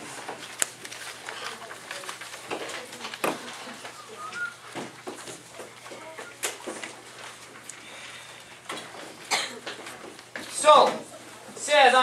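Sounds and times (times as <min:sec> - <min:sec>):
paper rustling: 0:00.0 - 0:07.7
students chattering: 0:01.2 - 0:06.9.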